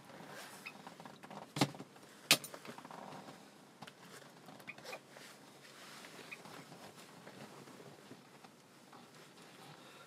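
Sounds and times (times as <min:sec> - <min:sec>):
faint rustling: 0:00.0 - 0:10.0.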